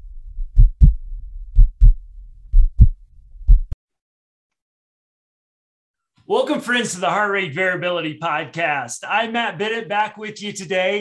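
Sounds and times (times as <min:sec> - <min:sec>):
heartbeat thumps: 0:00.0 - 0:03.8
low rumble: 0:00.0 - 0:03.8.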